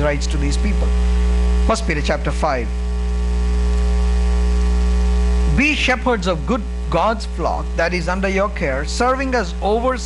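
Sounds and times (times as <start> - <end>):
electrical mains hum: 0.0 - 10.0
microphone hiss: 0.0 - 10.0.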